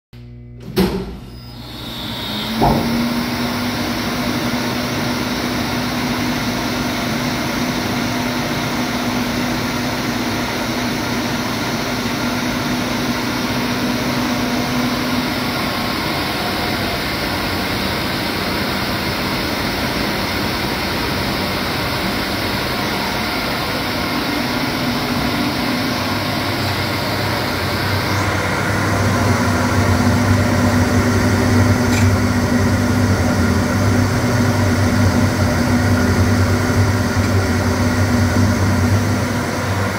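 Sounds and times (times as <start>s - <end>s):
bowl cutter machine whirring: 0.2s - 39.9s.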